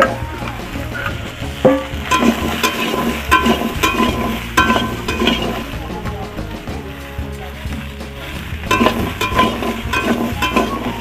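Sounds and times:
frying sizzle: 0:00.0 - 0:11.0
spatula clinking against pan: 0:02.1 - 0:05.7, 0:08.7 - 0:11.0.

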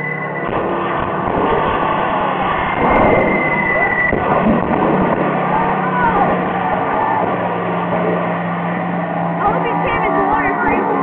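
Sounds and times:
steady low hum: 0:00.0 - 0:11.0
higher voices: 0:05.3 - 0:08.0, 0:09.2 - 0:11.0
mixed voices: 0:05.4 - 0:07.4, 0:09.4 - 0:11.0.

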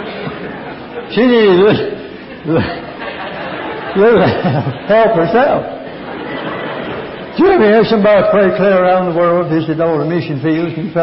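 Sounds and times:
crowd laughing: 0:00.0 - 0:09.4.

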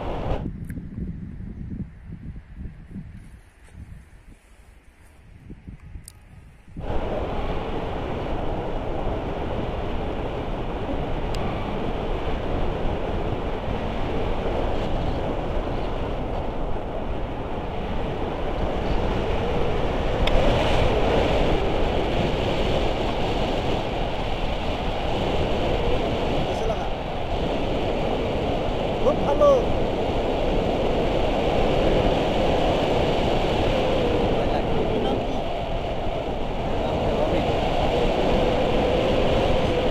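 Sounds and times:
wind rushing over microphone: 0:00.0 - 0:39.9.

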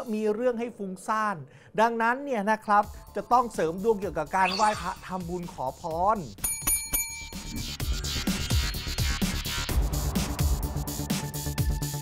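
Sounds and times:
desk service bell ringing: 0:06.4 - 0:07.6.

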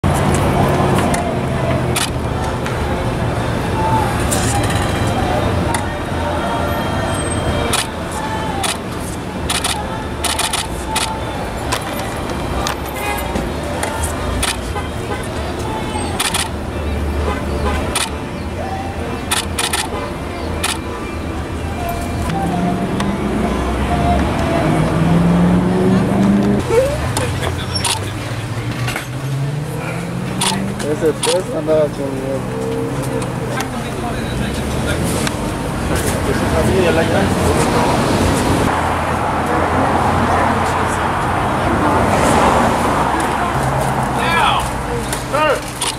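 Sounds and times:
car sounds: 0:00.0 - 0:45.9
indistinct voices: 0:00.0 - 0:45.9
sharp clicks: 0:19.3 - 0:19.9, 0:30.4 - 0:30.6.

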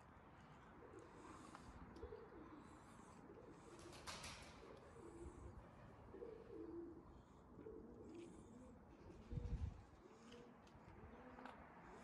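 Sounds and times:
pigeons cooing: 0:00.6 - 0:12.0.

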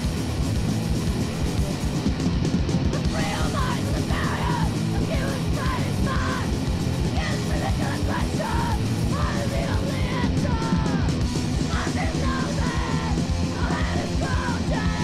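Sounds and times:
loud punk band playing: 0:00.0 - 0:15.0
shouted vocals: 0:03.0 - 0:15.0.

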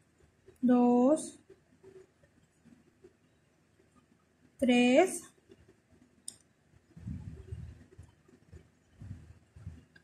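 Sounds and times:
crochet hook through yarn rustling: 0:00.0 - 0:10.0.

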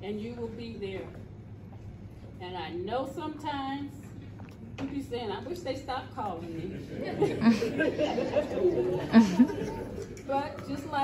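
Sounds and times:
people chattering and laughing: 0:06.2 - 0:11.0.

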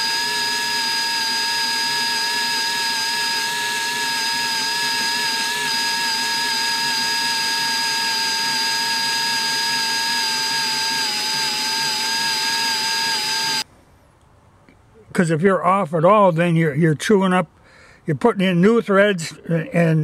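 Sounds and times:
electric drill whining under load: 0:00.0 - 0:13.7.

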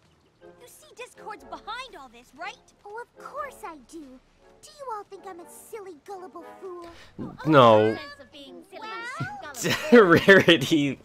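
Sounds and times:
cartoon character voices: 0:00.6 - 0:10.5.

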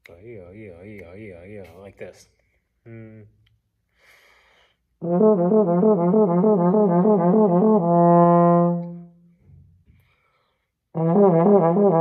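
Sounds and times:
soft breath: 0:03.9 - 0:04.9, 0:09.9 - 0:10.8.

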